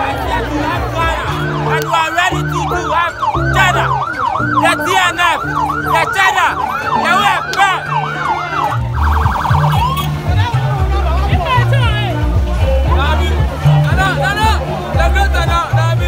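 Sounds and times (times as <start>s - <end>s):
low music bass line: 0.0s - 16.0s
police siren sweeping: 1.2s - 10.3s.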